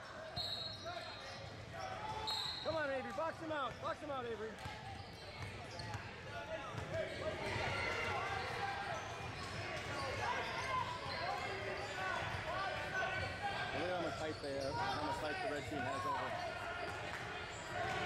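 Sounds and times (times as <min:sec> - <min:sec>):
sneakers squeaking: 0:00.2 - 0:18.0
shouts and chatter: 0:06.0 - 0:18.0.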